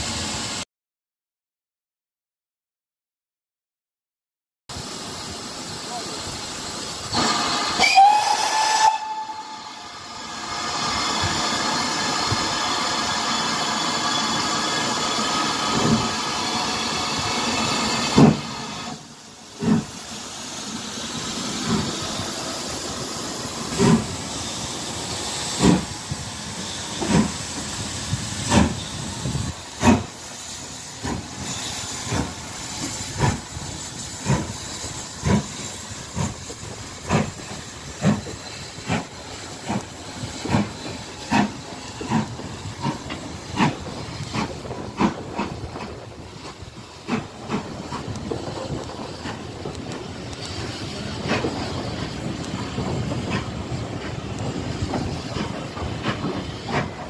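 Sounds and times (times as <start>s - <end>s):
steam hissing: 0.0s - 0.6s, 4.7s - 57.0s
steam locomotive exhaust chuffs: 4.7s - 57.0s
loud steam locomotive whistle: 7.2s - 10.2s.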